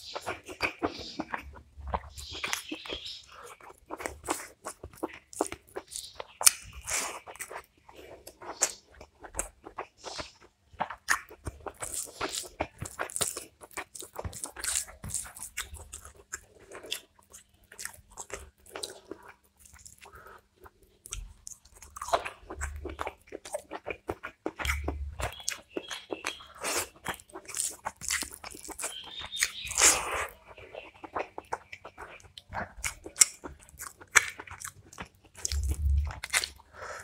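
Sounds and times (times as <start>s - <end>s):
wet chewing: 0.0s - 37.0s
crunching bites: 10.8s - 20.0s, 21.1s - 30.1s, 30.9s - 36.6s.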